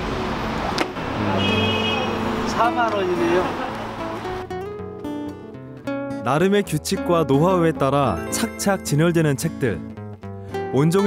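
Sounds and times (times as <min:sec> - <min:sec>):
passing cars: 0:00.0 - 0:04.6
background music: 0:02.3 - 0:11.0.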